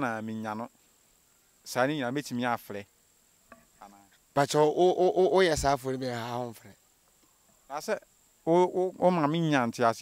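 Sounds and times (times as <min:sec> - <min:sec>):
crickets chirring: 0:00.0 - 0:10.0
man's voice: 0:04.4 - 0:06.7.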